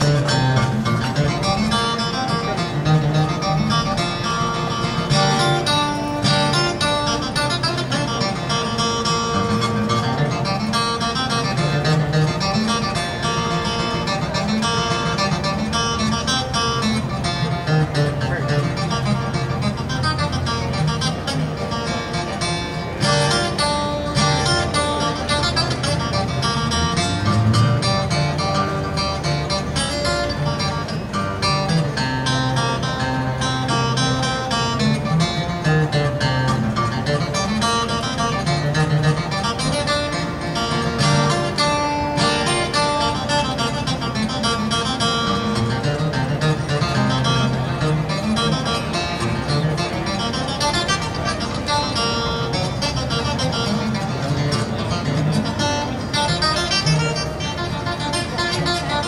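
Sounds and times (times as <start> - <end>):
acoustic guitar picking melody: 0.0 - 59.0
acoustic guitar strumming rhythm: 0.0 - 59.0.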